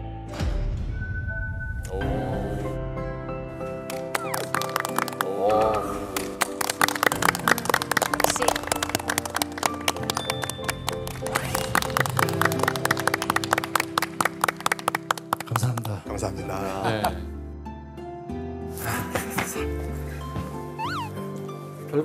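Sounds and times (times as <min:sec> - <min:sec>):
background music with held tones: 0:00.0 - 0:22.0
people clapping: 0:03.9 - 0:16.1.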